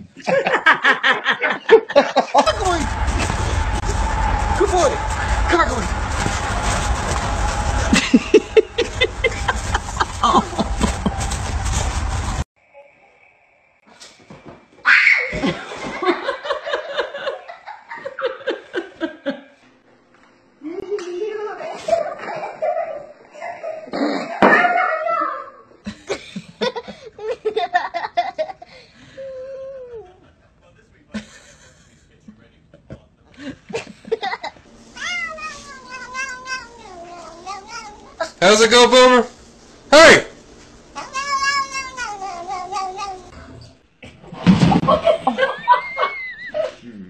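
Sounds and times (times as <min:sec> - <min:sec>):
rumble on microphone: 0:02.4 - 0:12.5
sharp sounds: 0:02.4 - 0:12.5
faint high whine: 0:02.4 - 0:14.6
cat meowing: 0:35.0 - 0:38.4, 0:41.0 - 0:43.3.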